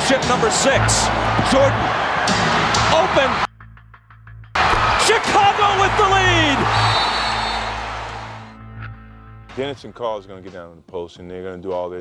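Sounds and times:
crowd cheering: 0.0s - 3.5s, 4.6s - 8.6s
background music: 0.0s - 12.0s.

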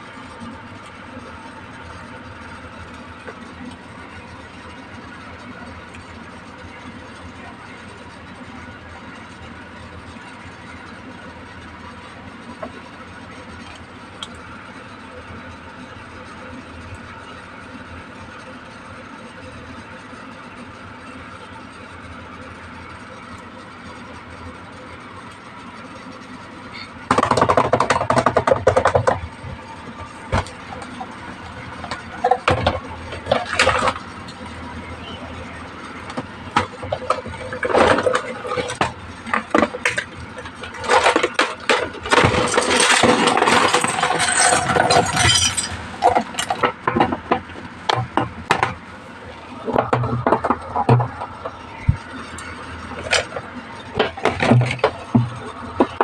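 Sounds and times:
plastic clicks and knocks: 27.1s - 29.3s.

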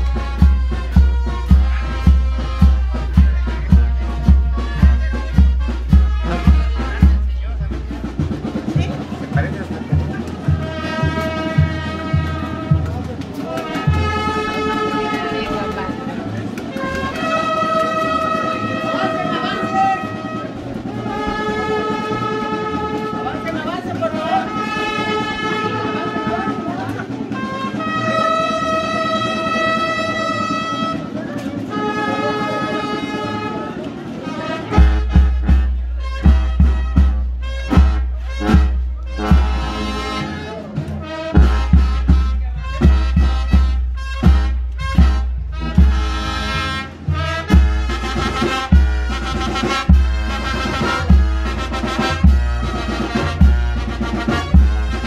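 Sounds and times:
steady drumbeat: 0.0s - 31.8s, 32.7s - 55.0s
band playing long held chords: 0.0s - 55.0s.

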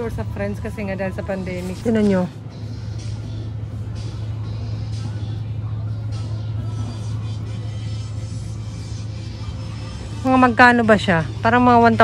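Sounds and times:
faint background music: 0.0s - 12.0s
steady low hum: 0.0s - 12.0s.

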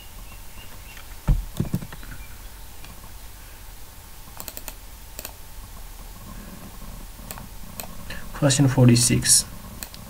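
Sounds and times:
low steady hum: 0.0s - 10.0s
computer mouse clicks: 4.4s - 5.4s, 9.8s - 10.0s.

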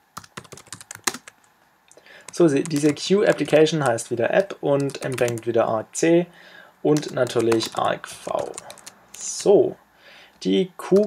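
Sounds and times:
computer keyboard typing: 0.2s - 1.4s, 2.2s - 5.5s, 6.9s - 9.5s.

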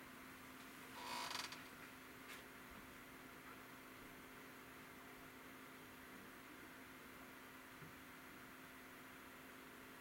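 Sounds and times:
faint steady hum: 0.0s - 10.0s
short creak: 1.0s - 1.8s.

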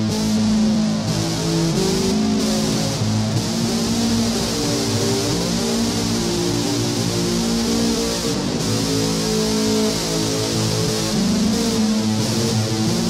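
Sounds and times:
distorted electric guitar notes: 0.0s - 13.0s.

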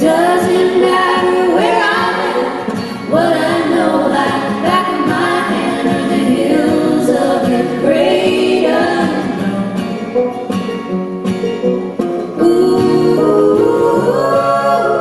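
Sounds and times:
women singing close harmony: 0.0s - 9.9s, 12.4s - 15.0s
strummed acoustic guitar: 0.0s - 15.0s.

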